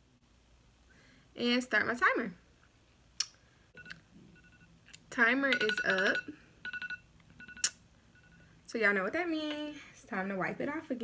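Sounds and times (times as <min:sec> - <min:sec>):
timer alarm beeping: 0:03.8 - 0:04.8, 0:05.5 - 0:08.6.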